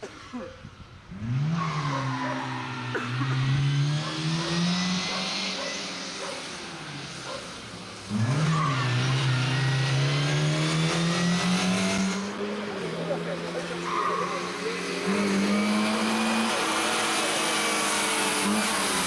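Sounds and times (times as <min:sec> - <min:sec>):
rally car engine revving: 0:01.0 - 0:19.0.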